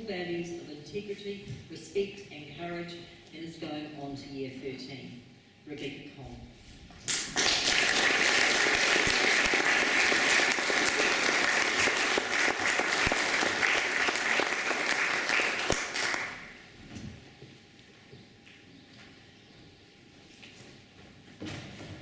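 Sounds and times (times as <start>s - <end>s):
audience applauding: 7.1s - 16.6s.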